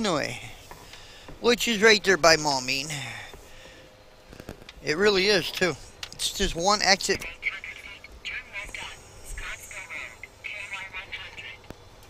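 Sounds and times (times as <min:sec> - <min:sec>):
talk through small speaker: 0:07.1 - 0:11.7.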